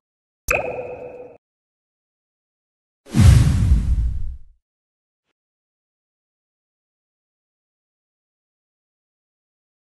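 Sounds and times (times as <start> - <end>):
deep boom: 3.1 - 4.5
sudden whoosh: 3.1 - 4.5.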